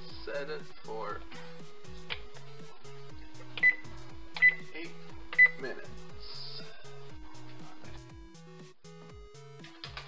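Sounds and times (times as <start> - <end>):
background music: 0.0 - 10.0
oven keypad beeps: 3.6 - 4.7, 5.3 - 5.6.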